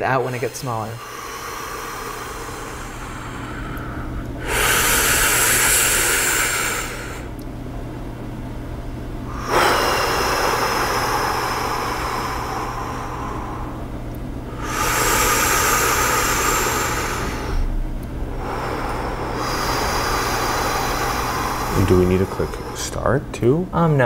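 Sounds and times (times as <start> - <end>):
person breathing slowly: 0.0 - 7.4, 9.3 - 23.0.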